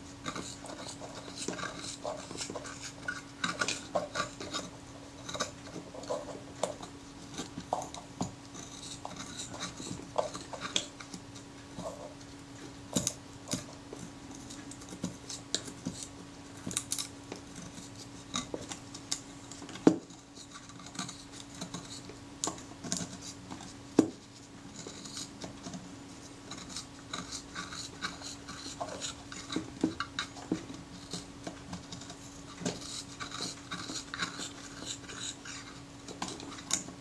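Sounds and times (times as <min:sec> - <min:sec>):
blade scratching under covering: 0:00.0 - 0:12.2, 0:12.9 - 0:37.0.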